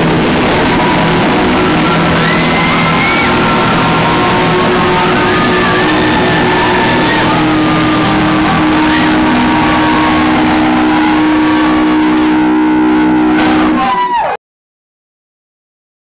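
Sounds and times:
high sliding guitar tones: 0.0s - 14.2s
distorted electric guitars droning: 0.0s - 14.3s.

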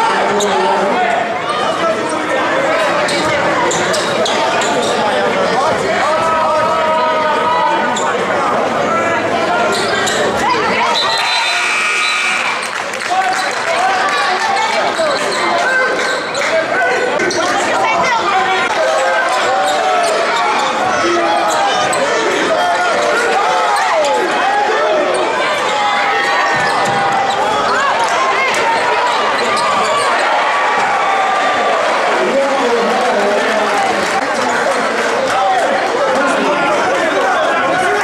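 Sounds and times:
players and spectators calling: 0.0s - 38.0s
sneakers squeaking: 2.8s - 5.2s, 9.6s - 12.7s, 14.8s - 18.1s, 25.0s - 30.4s.

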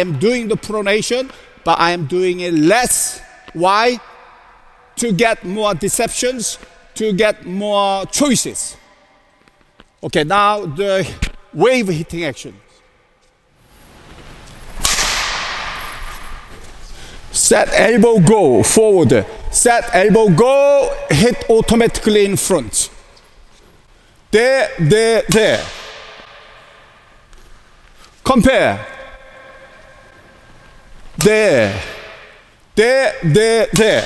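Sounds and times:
racket striking shuttlecock: 14.8s - 16.3s.

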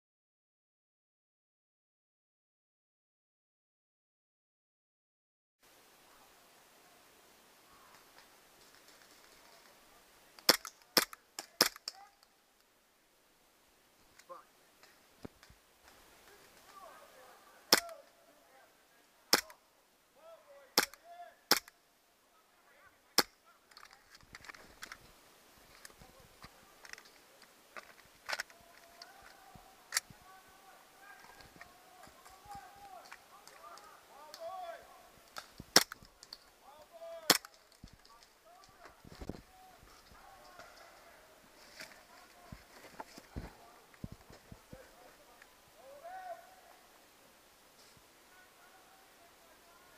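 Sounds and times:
distant shouting: 16.3s - 21.5s, 28.4s - 35.2s, 36.5s - 37.6s, 38.2s - 42.6s, 44.6s - 47.0s.

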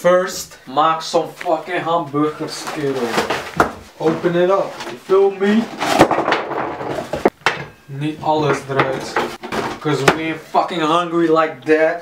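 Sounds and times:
plastic packaging rustling: 2.3s - 7.3s.

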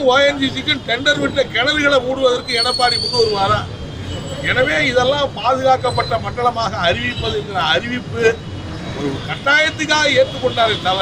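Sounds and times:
man speaking: 0.0s - 3.7s, 9.1s - 11.0s.

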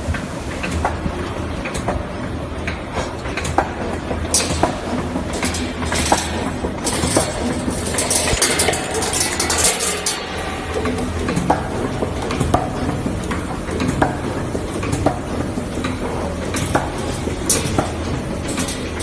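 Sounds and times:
machine hum: 0.0s - 19.0s
metallic clicks and clinks: 4.3s - 11.4s, 17.5s - 19.0s.

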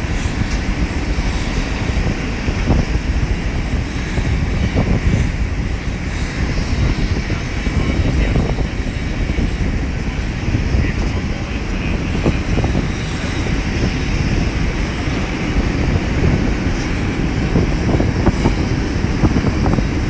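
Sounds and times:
aircraft engine noise: 0.0s - 20.0s
wind buffeting microphone: 0.0s - 20.0s.

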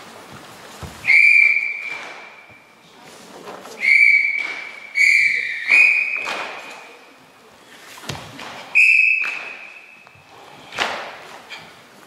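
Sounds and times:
referee's whistle blasts with echo: 1.0s - 2.6s, 3.8s - 6.8s, 8.8s - 10.0s.

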